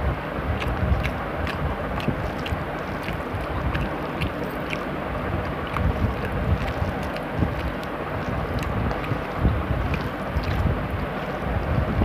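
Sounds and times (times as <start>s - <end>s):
low rumbling noise: 0.0s - 12.0s
chewing: 0.4s - 11.6s
fingers mixing rice on steel plate: 0.5s - 11.4s.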